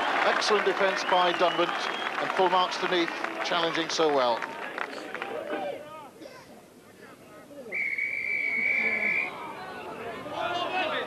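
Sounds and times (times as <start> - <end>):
voices: 3.7 - 11.0
referee's whistle blast: 7.8 - 9.4.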